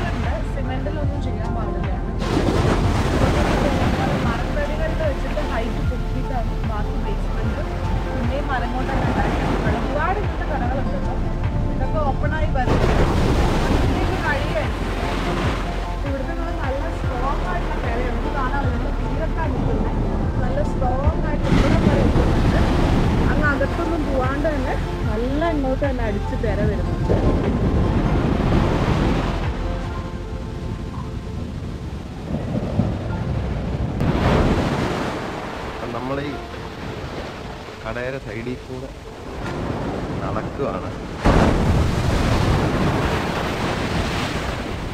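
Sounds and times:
wind on microphone: 0.0 - 25.2, 25.9 - 35.6
sea surf washing onto shore: 2.2 - 11.1, 12.7 - 18.7, 27.0 - 44.9.

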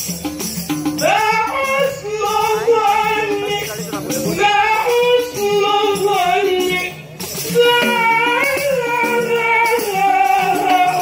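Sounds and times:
solo voice chanting: 1.0 - 11.0.

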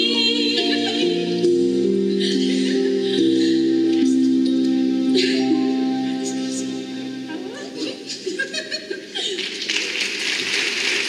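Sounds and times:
audience applauding: 9.2 - 11.0.

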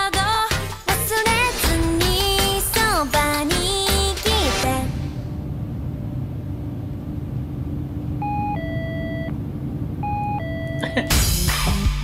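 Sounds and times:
bus interior rumble: 1.2 - 12.0
faint hum: 1.7 - 12.0.

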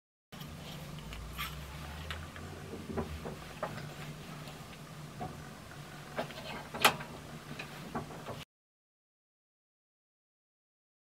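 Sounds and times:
faint low hum: 0.4 - 8.4.

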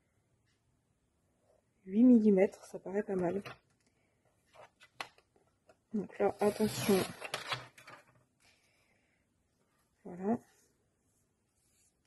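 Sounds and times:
paper trimmer blade sliding: 6.3 - 7.6.

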